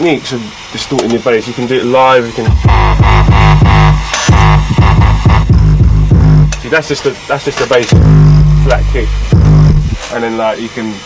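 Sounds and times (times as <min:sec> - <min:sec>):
kick drums dropping in pitch: 0:02.5 - 0:06.8, 0:07.9 - 0:10.0
distorted synthesizer bass: 0:02.5 - 0:07.3, 0:07.9 - 0:10.1.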